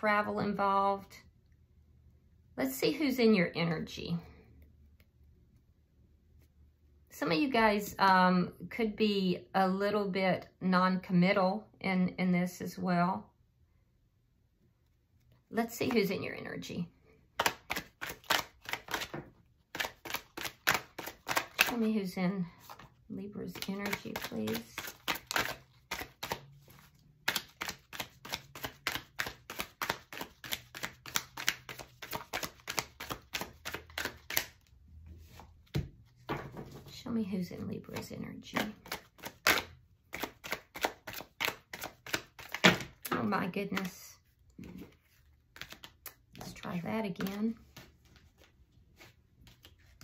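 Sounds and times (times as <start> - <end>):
cards being shuffled: 17.4 - 21.9, 22.5 - 36.8, 37.9 - 44.0, 44.6 - 50.0.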